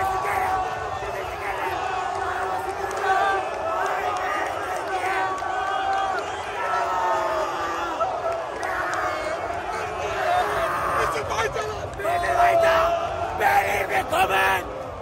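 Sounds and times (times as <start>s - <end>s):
stadium crowd cheering: 0.0s - 15.0s.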